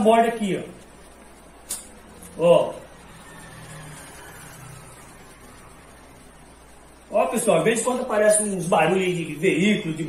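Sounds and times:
passing vehicle engine rumble: 0:02.8 - 0:06.7.

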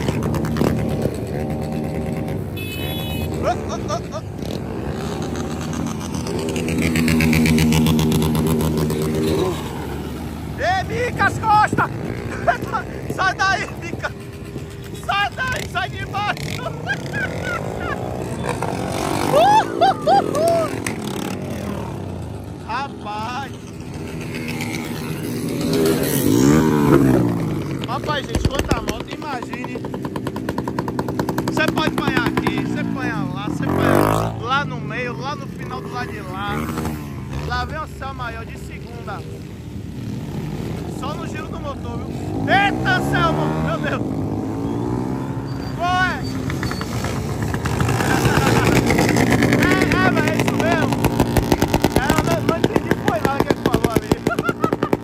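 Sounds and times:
motorcycles revving past: 0:00.0 - 0:55.0.

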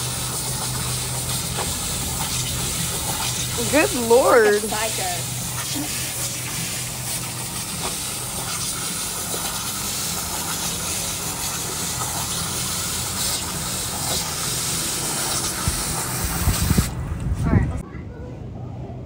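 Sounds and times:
hose nozzle spraying water: 0:00.0 - 0:17.0.

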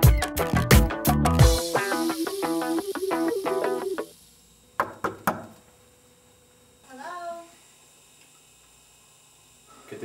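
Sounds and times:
faint room hum: 0:02.8 - 0:10.0.

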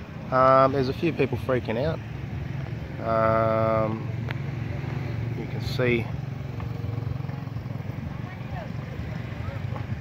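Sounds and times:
motorbike engine rumbling: 0:00.0 - 0:10.0.

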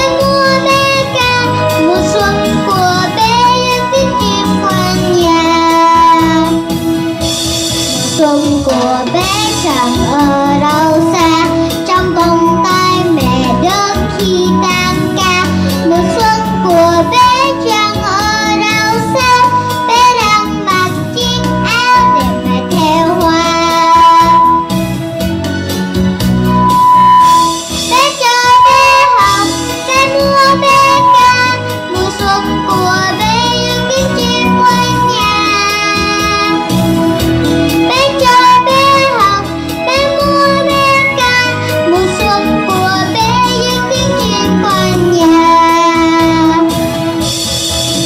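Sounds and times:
live instrumental accompaniment: 0:00.0 - 0:48.0.

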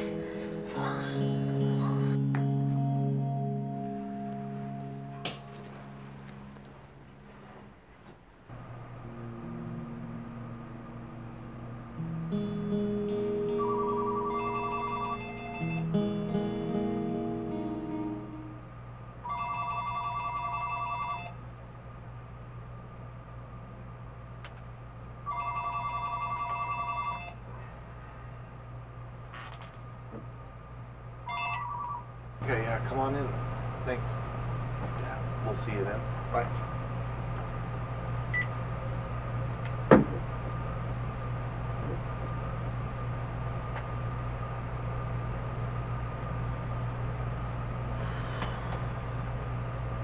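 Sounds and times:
music of sustained notes: 0:00.0 - 0:06.7, 0:08.6 - 0:18.7
telephone ringing: 0:13.6 - 0:15.8, 0:19.2 - 0:21.4, 0:25.3 - 0:27.4.

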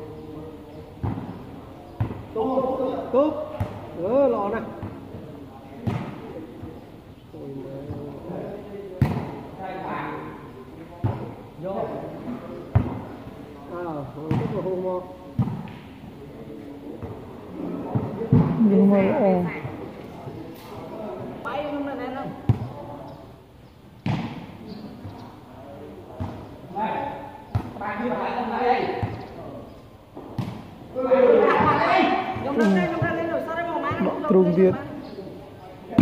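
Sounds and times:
spectators chattering: 0:00.0 - 0:36.0
volleyball smack: 0:24.0 - 0:24.5.

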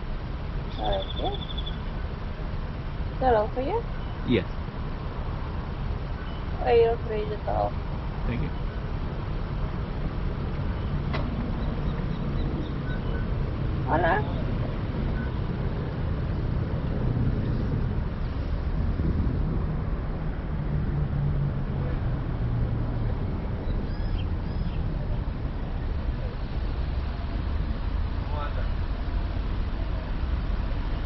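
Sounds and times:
car engine low rumble: 0:00.0 - 0:31.0.

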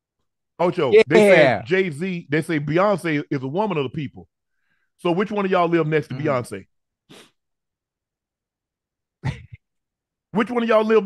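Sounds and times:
sharp breath: 0:07.1 - 0:07.4.

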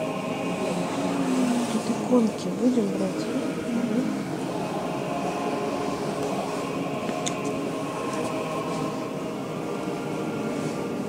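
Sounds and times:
hubbub of many voices: 0:00.0 - 0:11.0.

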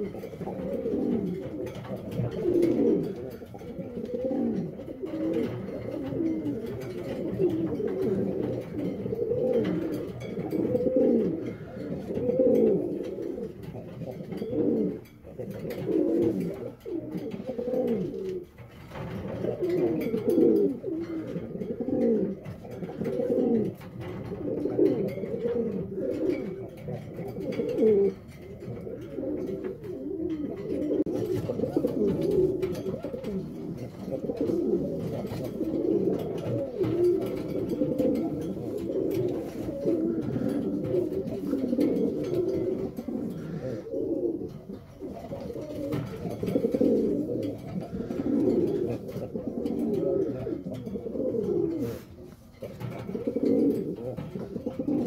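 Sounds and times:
pigeon cooing: 0:00.0 - 0:55.0.

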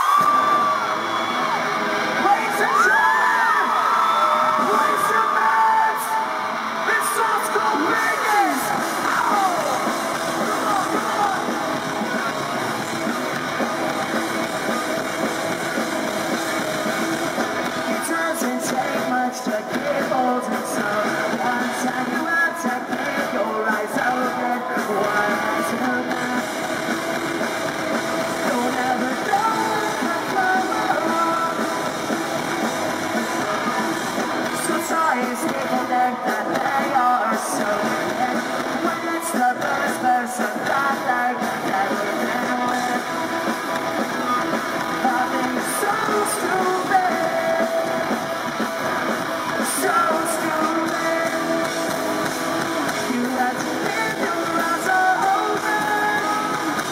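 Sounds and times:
bass guitar: 0:00.0 - 0:56.9
drums: 0:00.0 - 0:56.9
electric guitars: 0:00.0 - 0:56.9
person singing: 0:02.2 - 0:27.2, 0:28.2 - 0:56.9.

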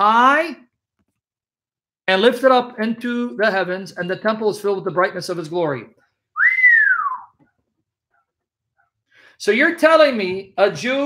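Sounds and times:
man whistling sliding note: 0:06.4 - 0:07.4.

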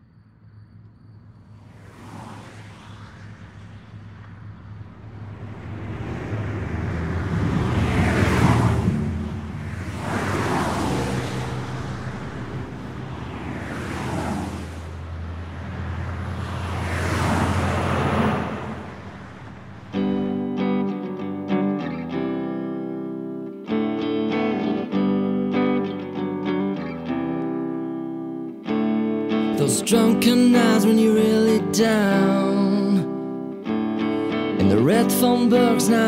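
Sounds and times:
low traffic rumble: 0:00.2 - 0:20.5
cars passing: 0:00.3 - 0:36.0.

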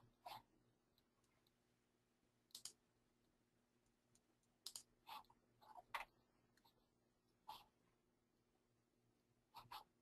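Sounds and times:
faint sharp clicks: 0:02.5 - 0:02.8, 0:03.8 - 0:04.9.

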